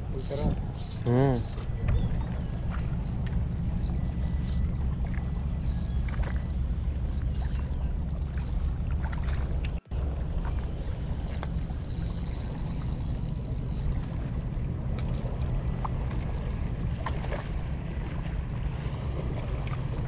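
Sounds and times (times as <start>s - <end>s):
fishing reel clicks: 0.1s - 1.6s, 3.0s - 4.9s, 5.6s - 8.7s, 11.6s - 14.0s.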